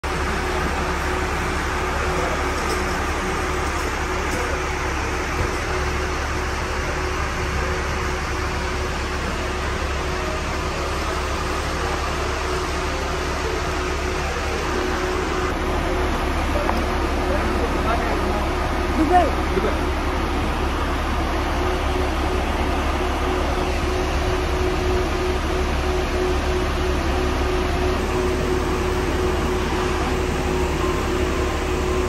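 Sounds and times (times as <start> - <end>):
idling coaches rumble: 0.0 - 32.0
indistinct voices: 0.0 - 32.0
mid-pitched hum: 0.0 - 32.0.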